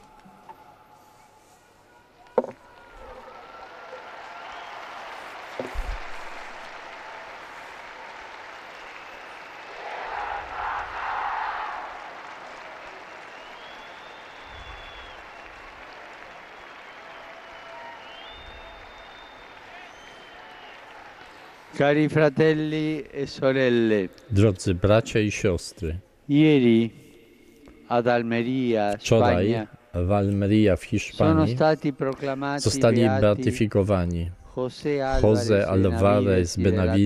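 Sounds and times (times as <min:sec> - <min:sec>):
crowd applauding and cheering: 0:00.0 - 0:22.8.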